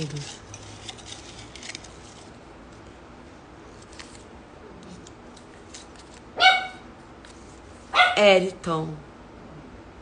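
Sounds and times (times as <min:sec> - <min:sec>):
paper crinkling: 0:00.0 - 0:02.9, 0:03.7 - 0:06.4
small dog yipping: 0:06.4 - 0:06.8, 0:08.0 - 0:08.2.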